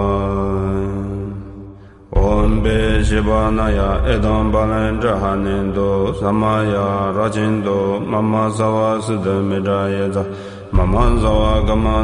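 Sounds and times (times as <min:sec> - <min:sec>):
low drone: 0:00.0 - 0:12.0
mantra chanting: 0:00.0 - 0:12.0.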